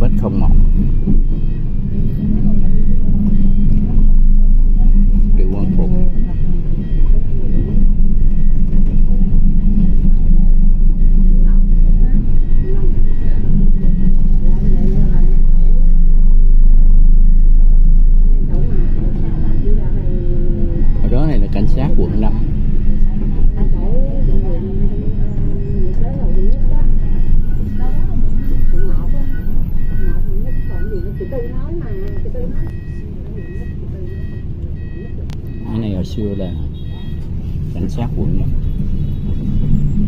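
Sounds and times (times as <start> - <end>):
bus engine and road rumble: 0.0 - 40.0
voices: 0.0 - 40.0.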